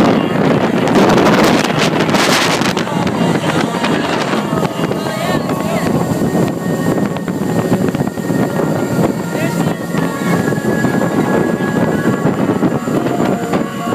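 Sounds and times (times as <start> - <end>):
boat engine: 0.0 - 13.9
rushing water: 0.0 - 13.9
wind buffeting microphone: 0.0 - 13.9.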